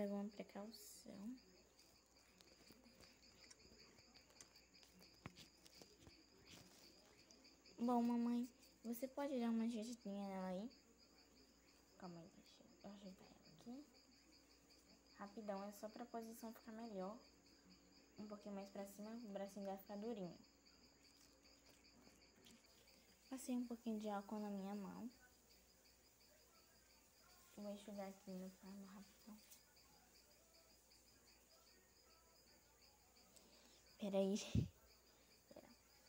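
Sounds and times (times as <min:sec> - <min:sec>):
crickets chirping: 0:00.0 - 0:36.0.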